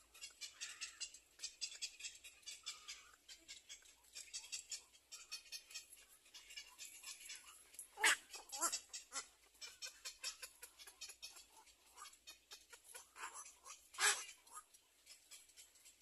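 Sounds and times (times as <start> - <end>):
high animal chittering: 0.0 - 16.0.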